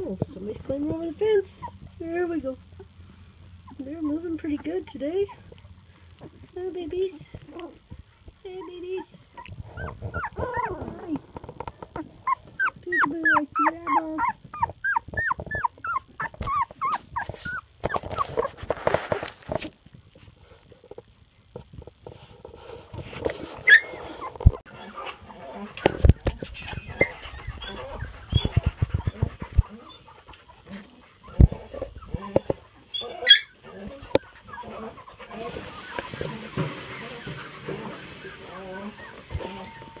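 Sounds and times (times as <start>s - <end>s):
puppies whimpering and squealing: 3.6s - 5.6s, 8.5s - 11.2s, 11.8s - 19.3s, 23.6s - 40.0s
puppies rustling in bedding: 8.8s - 20.8s, 25.8s - 32.4s, 33.8s - 40.0s.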